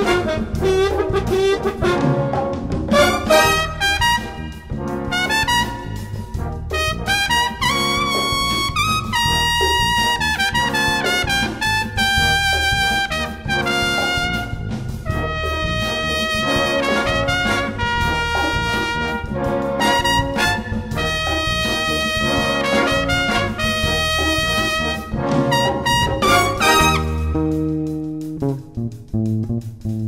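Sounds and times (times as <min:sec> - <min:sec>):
brass band playing jazz blues: 0:00.0 - 0:30.0.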